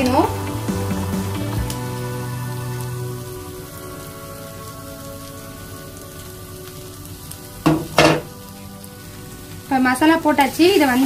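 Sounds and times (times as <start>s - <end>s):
masala sizzling in a pan: 0.0s - 11.0s.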